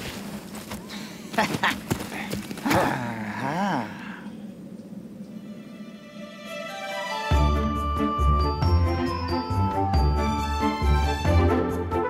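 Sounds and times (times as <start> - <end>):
person laughing: 1.3 - 1.9.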